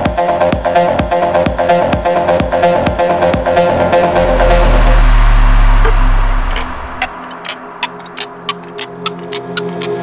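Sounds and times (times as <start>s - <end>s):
heavy low bass: 2.2s - 8.7s
ticking clicks: 5.9s - 10.0s.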